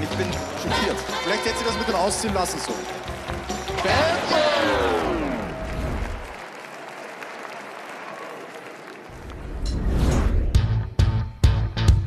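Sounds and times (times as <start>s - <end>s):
audience applauding: 0.0s - 9.5s
music with low bass: 10.6s - 12.0s.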